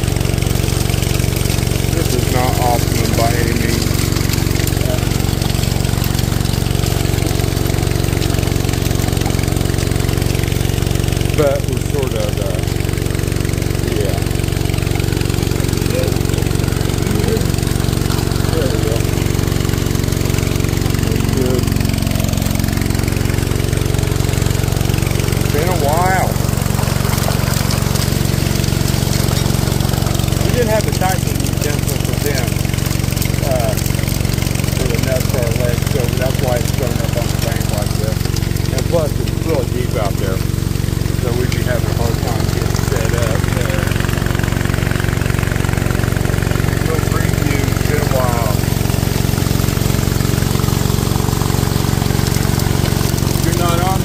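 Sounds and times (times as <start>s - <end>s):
gasoline engine and pump running: 0.0s - 54.0s
water rushing through sluice: 0.0s - 54.0s.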